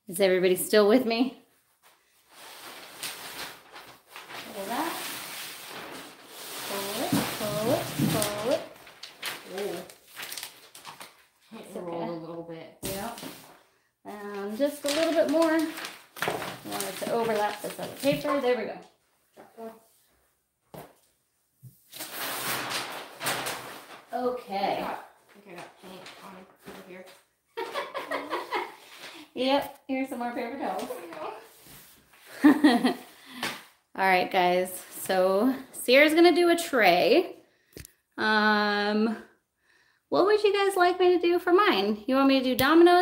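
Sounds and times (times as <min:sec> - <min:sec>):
paper rustling and crinkling: 0:01.8 - 0:11.4, 0:12.8 - 0:18.7, 0:21.9 - 0:29.6.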